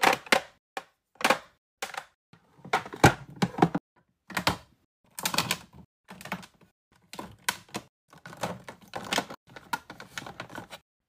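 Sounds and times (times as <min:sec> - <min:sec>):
plastic cases clicking and clacking: 0:00.0 - 0:10.8.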